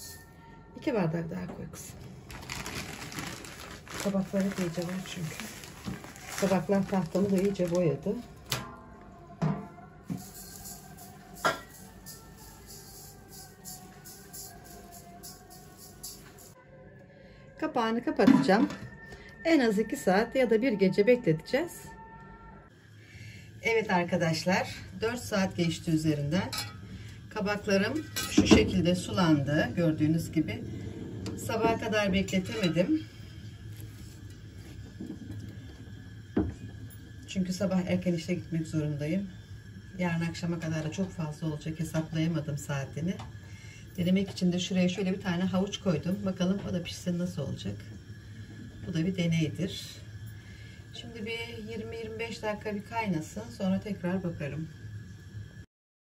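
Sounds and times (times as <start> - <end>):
soft background music: 0.0 - 43.3
low steady hum: 0.0 - 55.7.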